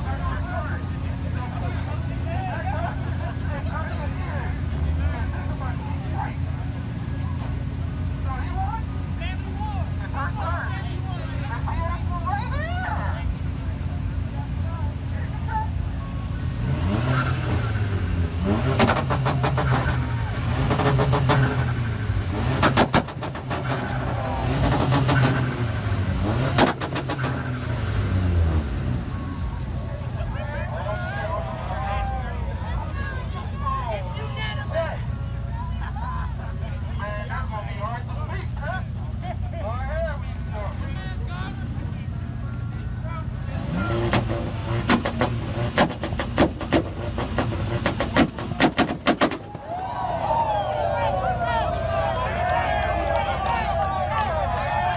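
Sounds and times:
car engine idling: 0:00.0 - 0:54.9
crowd chatter: 0:00.0 - 0:54.9
car engine revving hard: 0:16.5 - 0:29.1, 0:43.5 - 0:49.5
exhaust pops and bangs: 0:22.5 - 0:25.6, 0:26.4 - 0:27.6, 0:44.0 - 0:49.7.

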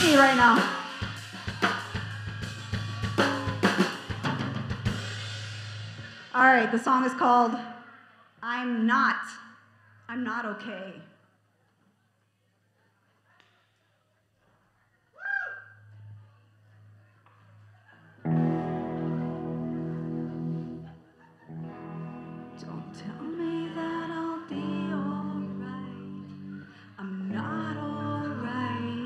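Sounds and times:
rock band playing: 0:00.0 - 0:06.4, 0:18.2 - 0:20.9, 0:21.5 - 0:23.7
gliding electric guitar: 0:18.2 - 0:29.0
person singing: 0:22.6 - 0:29.0.

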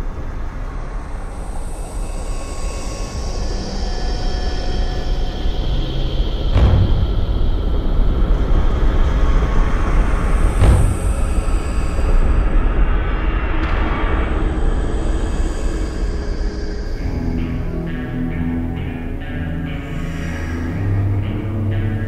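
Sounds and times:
deep rumbling drone: 0:00.0 - 0:22.0
sudden boom: 0:06.6 - 0:07.8, 0:10.5 - 0:12.2.

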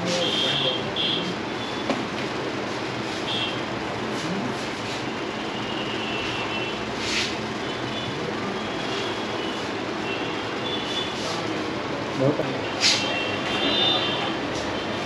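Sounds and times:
hair salon background noise: 0:00.0 - 0:15.0.

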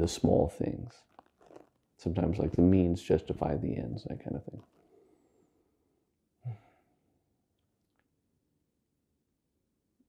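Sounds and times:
man sighing: 0:06.4 - 0:06.8.

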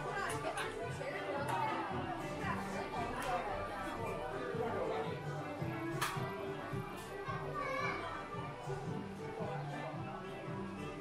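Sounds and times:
background music with low notes: 0:00.0 - 0:11.0
child's high voice: 0:07.3 - 0:08.2.

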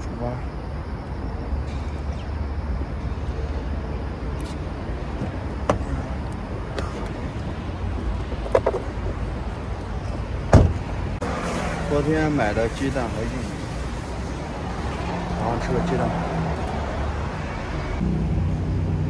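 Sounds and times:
low rumble of street traffic: 0:00.0 - 0:19.0
heavy thump: 0:10.5 - 0:10.9.

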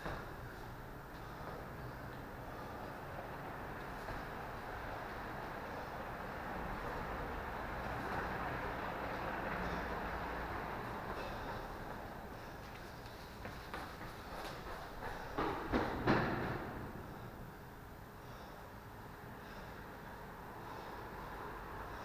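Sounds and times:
low traffic rumble: 0:00.0 - 0:22.0.

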